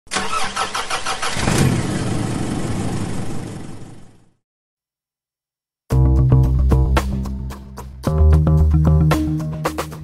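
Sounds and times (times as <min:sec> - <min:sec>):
starter motor cranking: 0:00.1 - 0:01.6.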